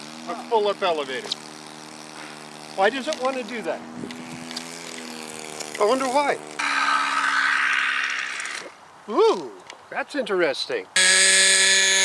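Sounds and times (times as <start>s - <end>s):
model airplane motor and propeller: 0.0s - 8.8s, 11.0s - 12.0s.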